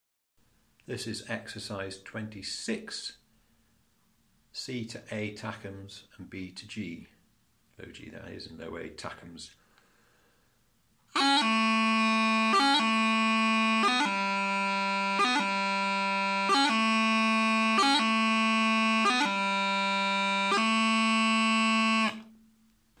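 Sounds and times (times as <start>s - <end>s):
bagpipe practice chanter playing: 11.1s - 22.4s.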